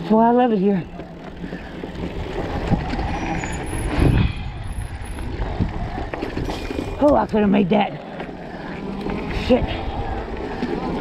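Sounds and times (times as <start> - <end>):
mountain bike rumbling on dirt trail: 0.0 - 11.0.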